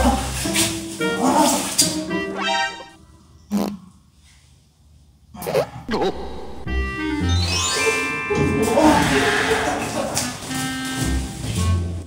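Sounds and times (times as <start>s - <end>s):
playful background music: 0.0s - 3.0s, 5.9s - 12.0s
loud fart: 3.5s - 3.8s.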